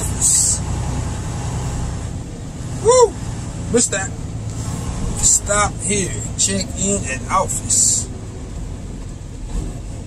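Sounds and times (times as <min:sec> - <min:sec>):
diesel truck engine running: 0:00.0 - 0:10.0
man exclaiming woo: 0:02.8 - 0:03.2.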